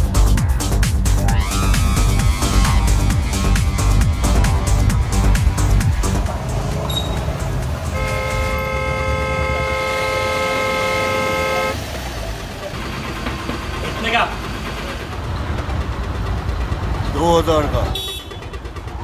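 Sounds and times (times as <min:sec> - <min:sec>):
low engine rumble: 0:00.0 - 0:19.0
car horn long blast: 0:07.9 - 0:11.9, 0:18.0 - 0:18.6.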